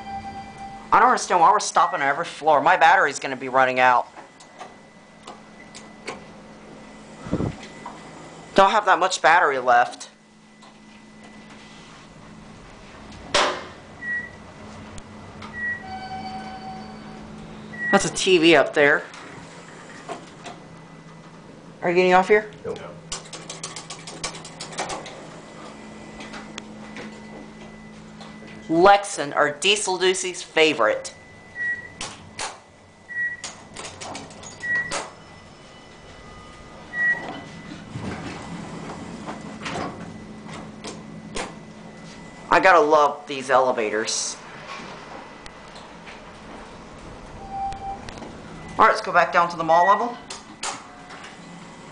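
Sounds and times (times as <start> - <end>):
elevator arrival chime: 0.0 - 9.4, 15.2 - 18.8, 25.1 - 32.0, 34.3 - 44.3, 47.1 - 51.9
elevator hum: 0.0 - 51.9
high electronic beeps: 15.5 - 18.2, 31.0 - 32.0, 47.4 - 50.2
elevator clunk: 31.6 - 41.9
short high beeps: 47.4 - 48.8.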